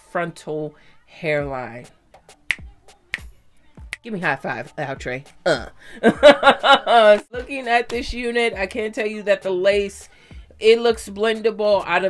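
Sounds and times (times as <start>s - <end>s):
finger snaps with deep thud: 2.5s - 4.1s.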